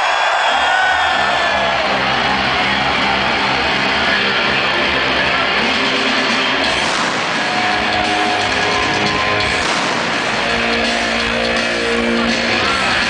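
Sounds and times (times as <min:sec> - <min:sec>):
live hard rock band: 0:00.9 - 0:13.0.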